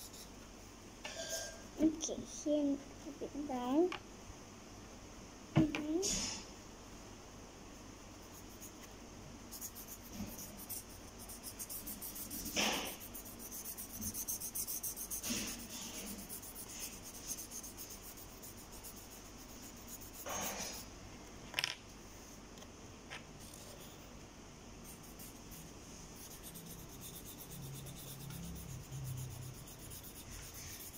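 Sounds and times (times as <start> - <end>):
colouring strokes on paper: 0.0 - 0.3, 8.2 - 8.9, 9.5 - 20.9, 23.4 - 24.1, 24.8 - 30.9.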